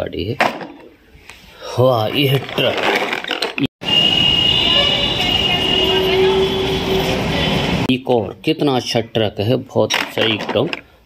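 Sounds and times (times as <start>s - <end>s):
steady high tone: 3.8s - 7.9s
roadside traffic: 3.8s - 8.0s.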